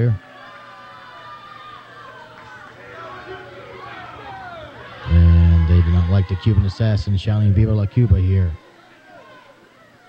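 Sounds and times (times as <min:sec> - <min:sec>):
crowd shouting and jeering: 0:00.0 - 0:10.0.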